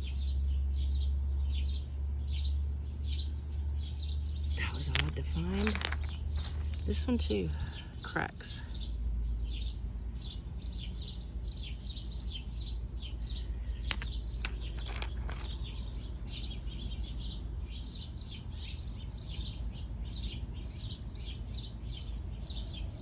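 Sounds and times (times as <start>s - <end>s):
low steady rumble: 0.0s - 20.6s
small birds chirping: 0.0s - 23.0s.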